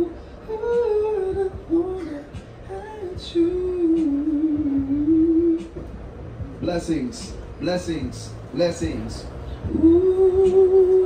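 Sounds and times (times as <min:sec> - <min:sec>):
man humming and singing: 0:00.0 - 0:11.0.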